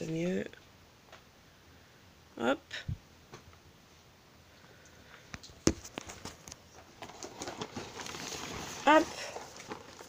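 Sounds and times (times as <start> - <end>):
objects rustling and shuffling: 5.0 - 10.0.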